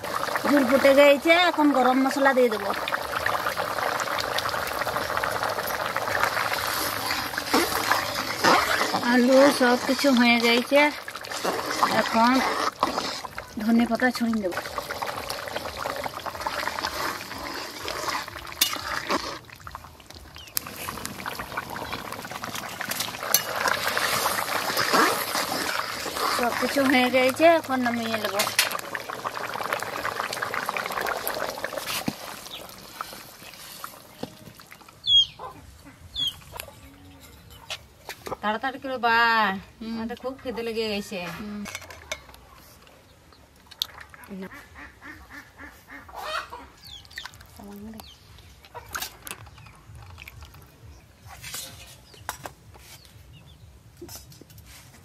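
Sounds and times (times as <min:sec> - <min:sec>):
curry bubbling in a pan: 0:00.0 - 0:35.0.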